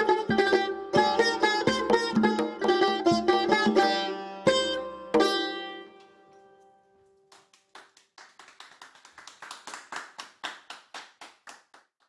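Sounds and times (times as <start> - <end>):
people clapping: 7.3 - 12.0.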